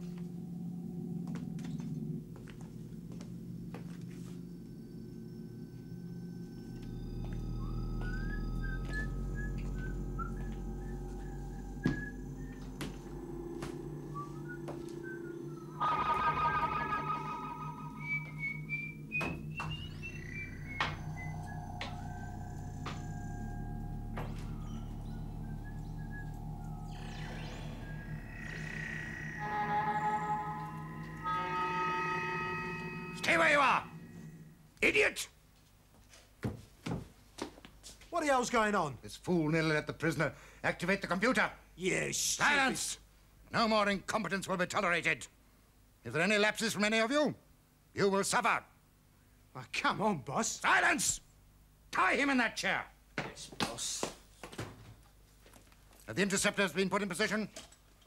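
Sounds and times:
buzzing tone clusters: 0.0s - 34.8s
warbling theremin-like tone: 0.0s - 34.8s
steady electronic hums: 0.0s - 35.6s.

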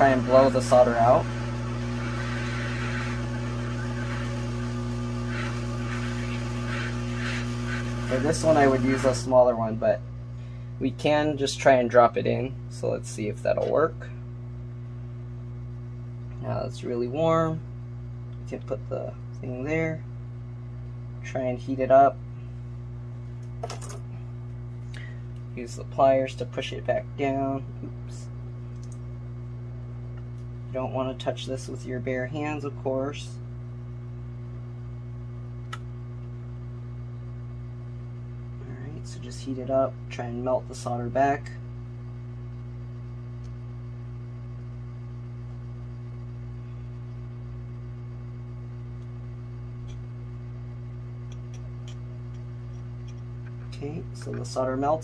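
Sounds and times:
hot air station humming: 0.0s - 55.0s.

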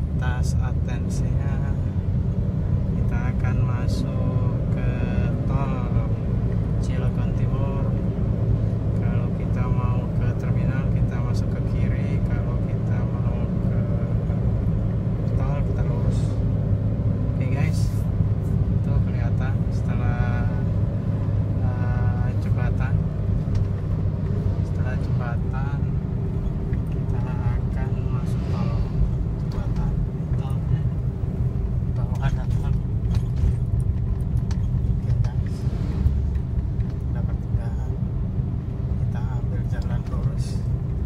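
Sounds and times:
car engine and road noise: 0.0s - 41.0s.

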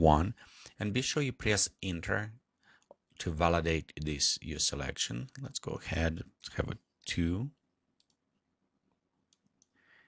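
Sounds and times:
faint computer mouse clicks: 8.0s - 8.2s.

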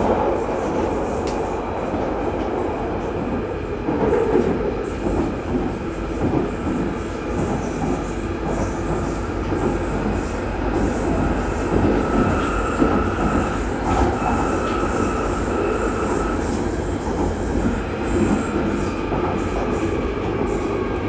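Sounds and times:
train rumbling through tunnel: 0.0s - 21.0s.

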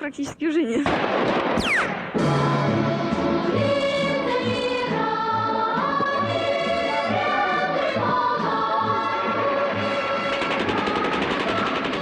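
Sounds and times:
choir singing sustained notes: 2.2s - 12.0s.

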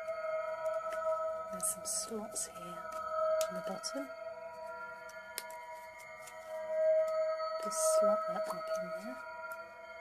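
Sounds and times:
music of held tones: 0.0s - 10.0s.

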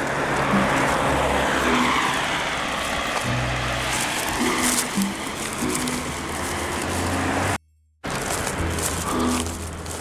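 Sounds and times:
car passing by: 0.0s - 7.6s
background music: 0.2s - 2.5s, 3.3s - 7.5s.

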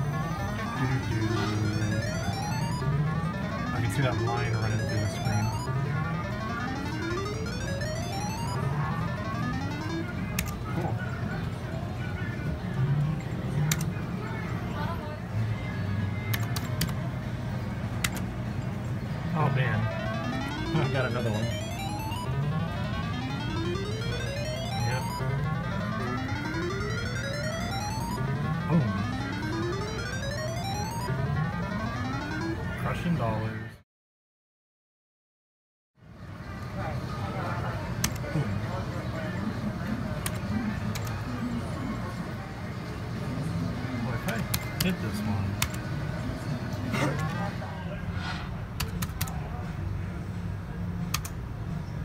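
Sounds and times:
climbing electronic tones: 0.0s - 10.9s, 19.2s - 33.0s.

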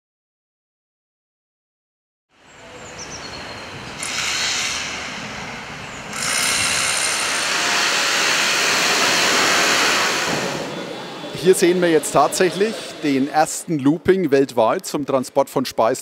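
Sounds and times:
construction site din: 2.6s - 15.7s.

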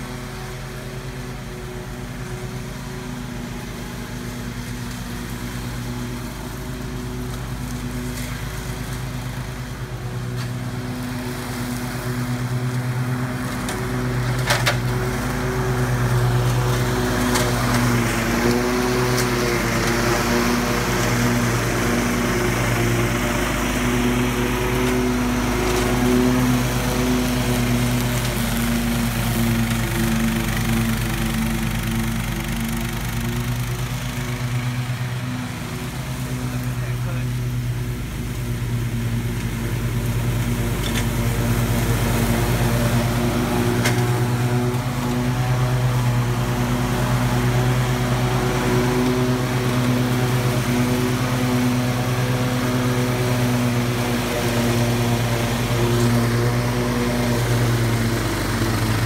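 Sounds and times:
riding mower engine running: 0.0s - 59.0s.

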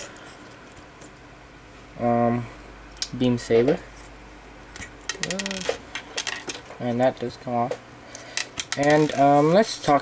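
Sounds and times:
plastic model parts clicking: 5.1s - 5.8s.

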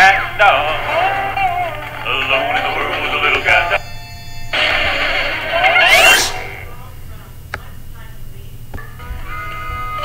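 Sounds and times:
cartoon music: 5.6s - 6.6s
rising sliding tones: 5.6s - 6.7s.

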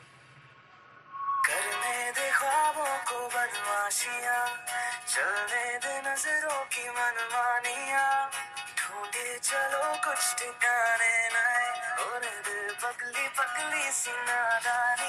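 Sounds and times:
pop song with sung vocals: 1.4s - 15.0s.

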